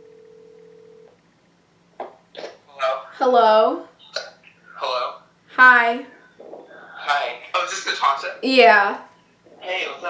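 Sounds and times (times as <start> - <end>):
phone ringback tone: 0.0 - 1.2.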